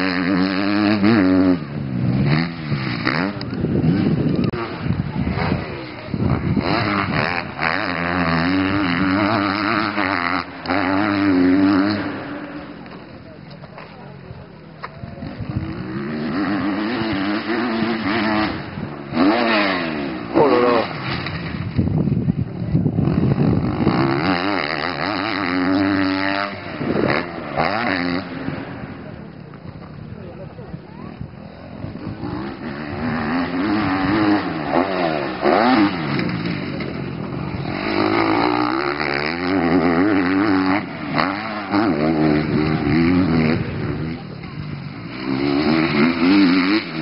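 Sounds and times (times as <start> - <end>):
dirt bike engine revving: 0.0 - 47.0.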